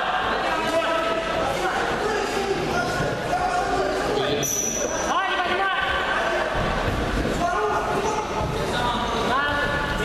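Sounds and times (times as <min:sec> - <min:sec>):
voices calling out in hall: 0:00.0 - 0:10.0.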